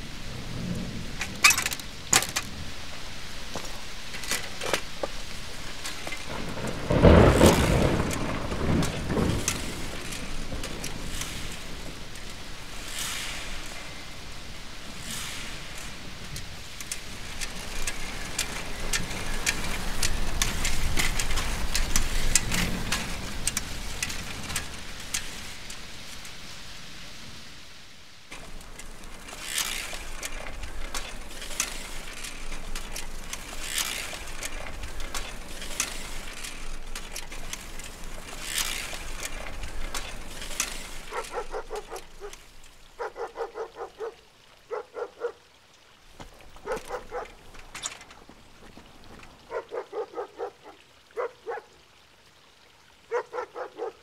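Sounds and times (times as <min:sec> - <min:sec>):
bicycle tyres rolling: 0:00.0 - 0:45.3, 0:45.9 - 0:51.6
bicycle chain ticking: 0:04.1 - 0:14.4, 0:15.0 - 0:25.8, 0:28.3 - 0:44.1.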